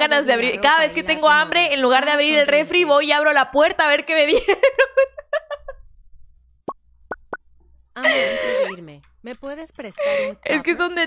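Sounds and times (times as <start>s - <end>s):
short plop: 7.1s - 7.4s
woman laughing: 8.0s - 8.8s.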